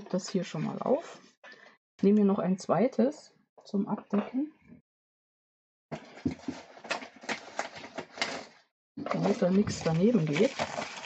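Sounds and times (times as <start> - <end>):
paper rustling: 6.0 - 11.0.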